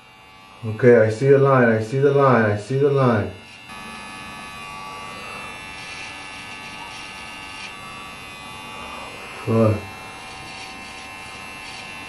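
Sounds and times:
electric hair clippers cutting hair: 0.0 - 12.0.

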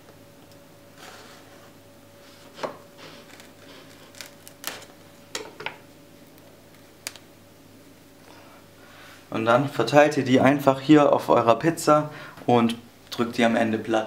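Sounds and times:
faint steady hum: 0.0 - 14.0.

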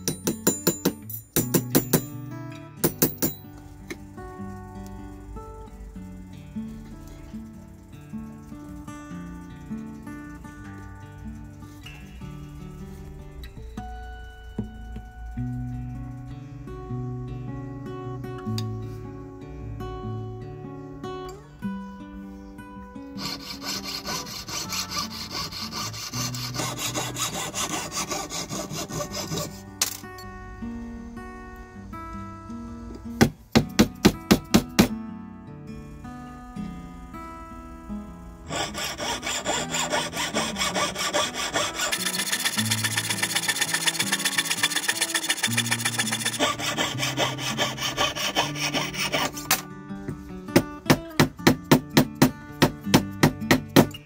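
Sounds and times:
mallet striking metal: 0.0 - 2.2, 2.8 - 3.5
background music: 10.6 - 53.9
saw cutting metal: 23.2 - 30.0, 38.5 - 49.6.

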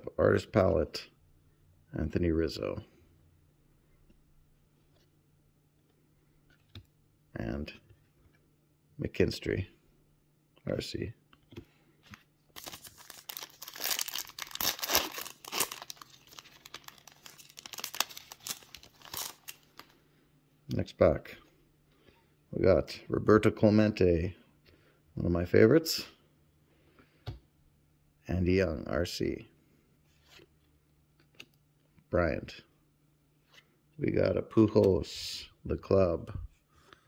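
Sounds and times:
foil wrapper tearing and crinkling: 12.6 - 19.8.

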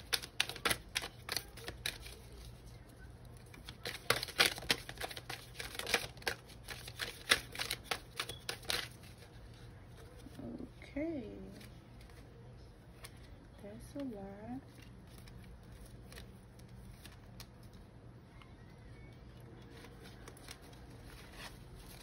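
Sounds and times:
cards being shuffled: 0.0 - 10.6, 14.0 - 17.9, 19.3 - 22.0.

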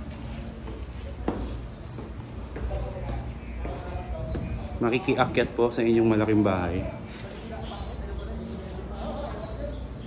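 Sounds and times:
footsteps on concrete stairs: 0.0 - 6.4
faint voices: 0.0 - 10.0.

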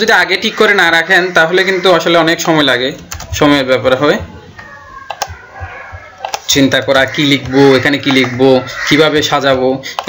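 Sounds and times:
keyboard and mouse clicks: 2.4 - 3.6, 4.6 - 8.4, 9.4 - 10.0.

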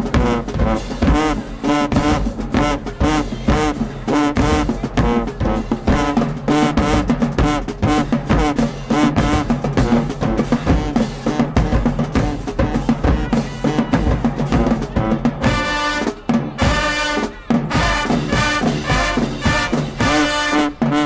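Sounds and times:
bass drum and snare drumming: 0.0 - 21.0
brass band riff: 0.0 - 21.0.

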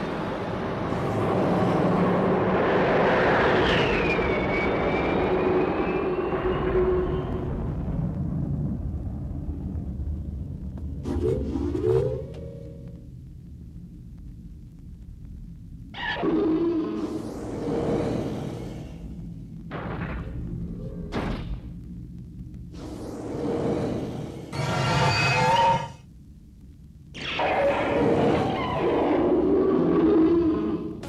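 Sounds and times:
low rumble: 0.0 - 24.8, 26.0 - 31.0.

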